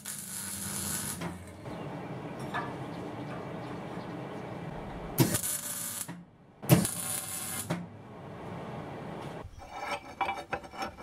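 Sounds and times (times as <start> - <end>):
arc welding sizzling hiss: 0.0 - 1.2, 5.2 - 6.1, 6.7 - 7.7.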